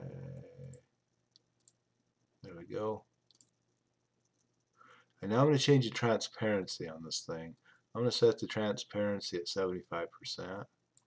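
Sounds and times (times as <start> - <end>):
man speaking: 0.0 - 0.8, 2.4 - 3.0, 5.2 - 10.7
computer mouse clicks: 0.6 - 1.8, 3.2 - 4.8.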